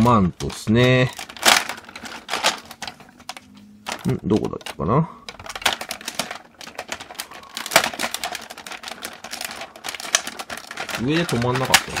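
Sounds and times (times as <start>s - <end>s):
plastic toy parts clicking: 0.0s - 12.0s.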